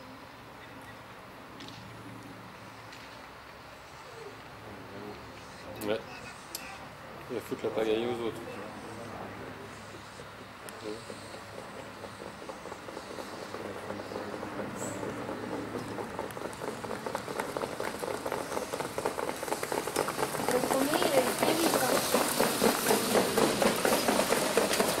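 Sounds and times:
hoofbeats of trotting horses: 9.6s - 25.0s.

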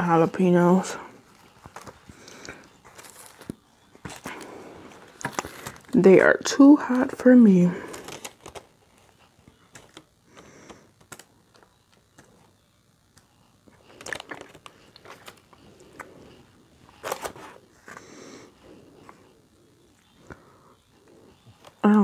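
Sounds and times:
paper wrapper crinkling: 1.4s - 6.0s, 7.8s - 10.1s, 13.7s - 18.0s.

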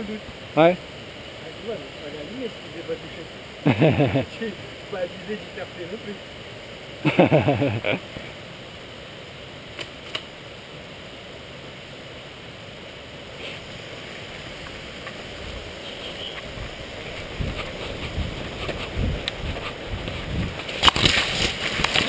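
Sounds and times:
leaves and branches rustling: 0.0s - 22.0s.

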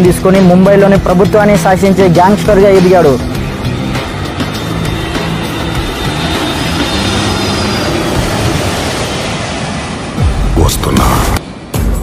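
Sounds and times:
music playing: 0.0s - 8.9s
jet engine noise: 0.0s - 12.0s.

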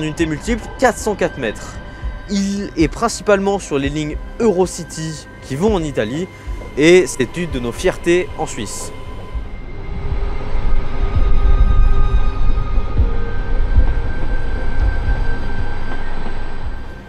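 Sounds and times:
steady electric hums: 0.0s - 17.0s
train rumbling over points: 0.0s - 17.0s.

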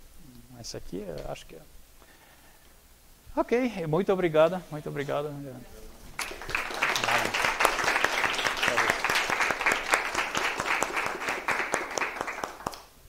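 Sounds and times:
audience applauding: 6.2s - 13.0s.

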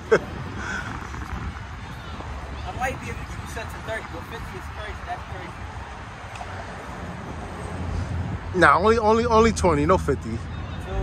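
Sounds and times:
low urban rumble: 0.0s - 11.0s.

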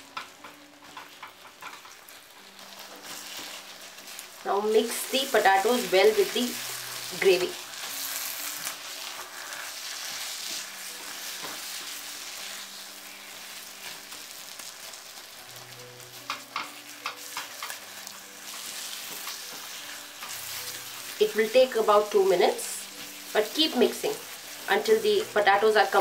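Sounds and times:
spatula scraping and tapping pan: 0.0s - 4.2s, 7.3s - 12.0s, 16.1s - 21.4s
food sizzling in a wok: 0.0s - 26.0s
spatula stirring and mashing: 0.1s - 26.0s.

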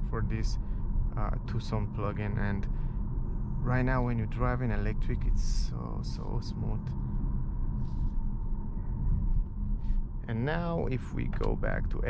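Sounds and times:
faint steady tone: 0.0s - 12.0s
road and tyre rumble: 0.0s - 12.0s.

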